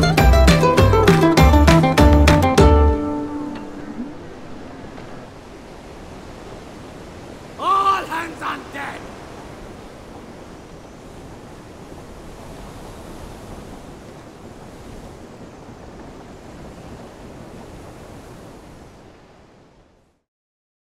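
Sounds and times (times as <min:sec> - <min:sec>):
rushing wind and surf: 0:00.0 - 0:20.2.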